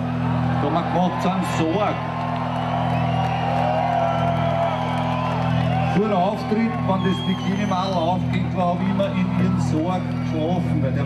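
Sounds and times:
audience voices and whoops: 0:00.0 - 0:08.3.

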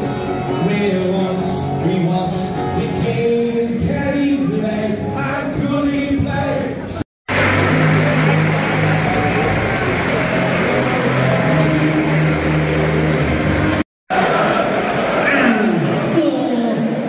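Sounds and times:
murmur of crowd voices: 0:00.0 - 0:17.0.

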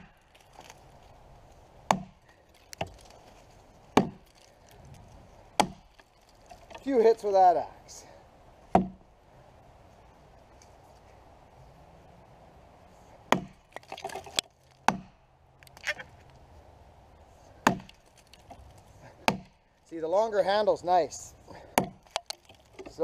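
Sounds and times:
axe chopping into log: 0:01.9 - 0:03.0, 0:04.0 - 0:04.4, 0:05.6 - 0:05.9, 0:08.7 - 0:09.0, 0:13.3 - 0:13.8, 0:14.8 - 0:15.2, 0:17.6 - 0:18.0, 0:19.2 - 0:19.6, 0:21.7 - 0:23.0.

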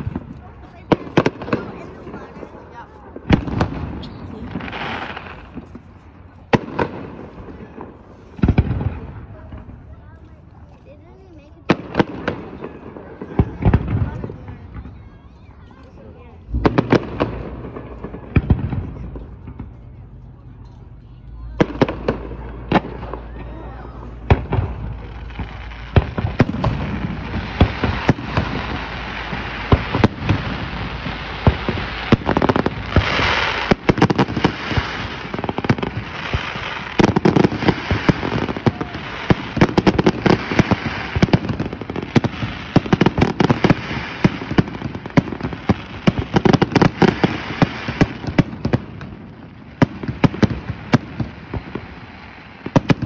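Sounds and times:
fireworks bursting: 0:00.0 - 0:53.0.

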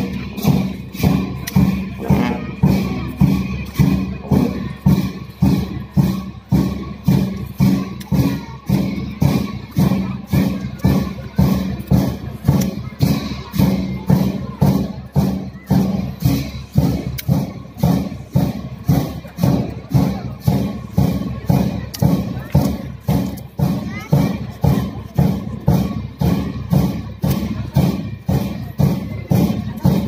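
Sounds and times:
cymbals beaten: 0:00.0 - 0:30.0
drum beating steadily: 0:00.0 - 0:30.0.

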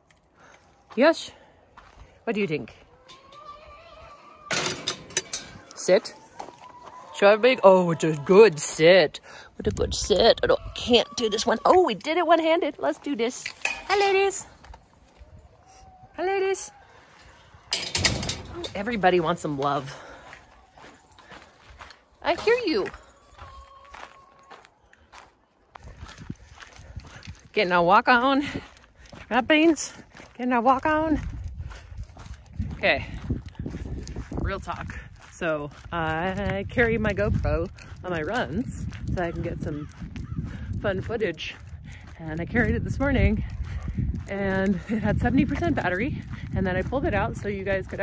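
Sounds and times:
footsteps on paved path: 0:00.0 - 0:04.4, 0:05.0 - 0:16.0, 0:16.9 - 0:48.0
metal gate latch rattling: 0:04.5 - 0:05.8, 0:17.7 - 0:19.1.

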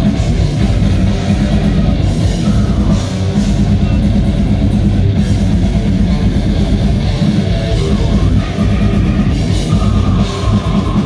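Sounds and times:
death metal band playing: 0:00.0 - 0:11.0
fast dense drumming: 0:00.0 - 0:11.0.

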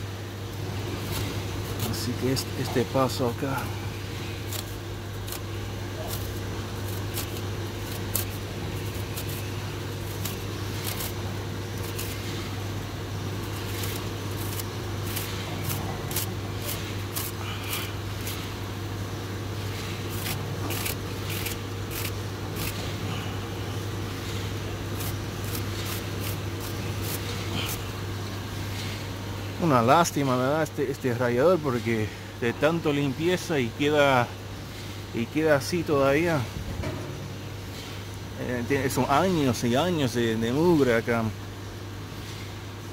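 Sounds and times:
steady low hum: 0:00.0 - 0:42.9
fin comb scratchy clicks: 0:04.3 - 0:12.6, 0:13.4 - 0:18.6, 0:19.7 - 0:23.0, 0:24.9 - 0:27.8.

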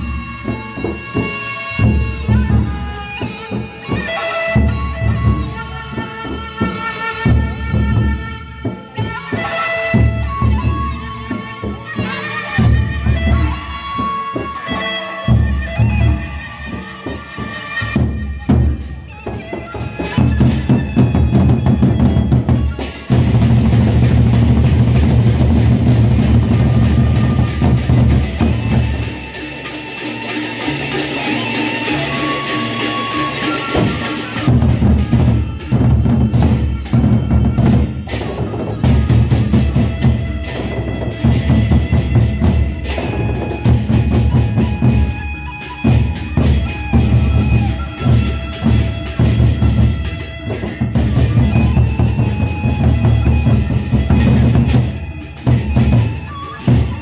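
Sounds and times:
cymbals: 0:00.0 - 0:57.0
high wind instrument melody: 0:00.0 - 0:57.0
barrel drums beaten with sticks: 0:17.9 - 0:29.7, 0:33.7 - 0:57.0.

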